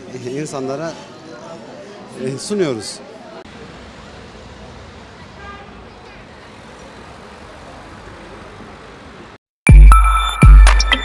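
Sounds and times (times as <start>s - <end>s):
city traffic: 0.0s - 9.4s.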